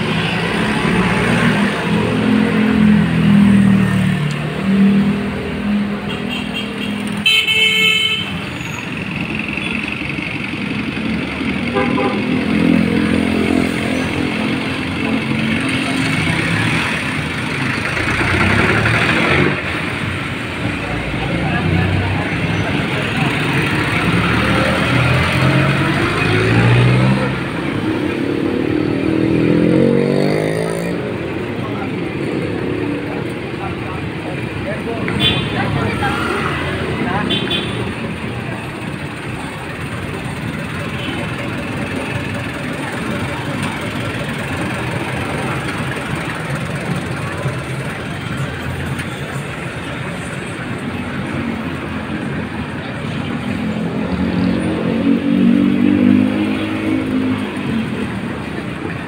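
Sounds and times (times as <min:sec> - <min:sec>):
street traffic engines running: 0:00.0 - 0:59.0
vehicle horn toot: 0:06.3 - 0:08.7, 0:11.7 - 0:12.2
engine revving as vehicle pulls away: 0:15.6 - 0:20.0, 0:23.4 - 0:31.2.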